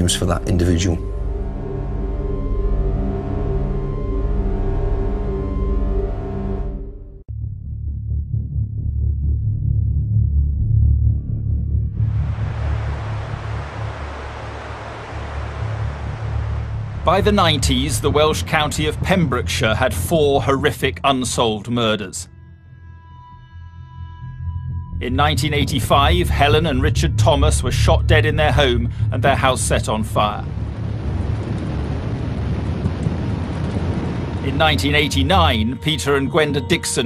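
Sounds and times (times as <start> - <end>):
hiss of sea and breeze: 12.0 - 20.3, 28.7 - 37.0
wind buffeting microphone: 30.4 - 35.5.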